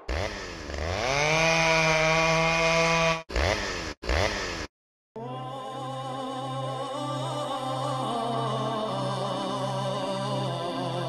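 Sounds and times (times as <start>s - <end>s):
small engine revving: 0.0s - 4.7s.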